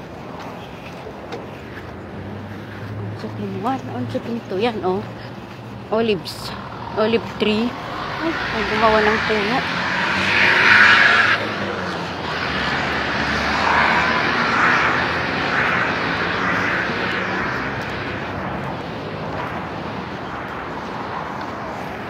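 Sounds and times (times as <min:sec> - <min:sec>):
cars passing on road: 0:00.0 - 0:22.0.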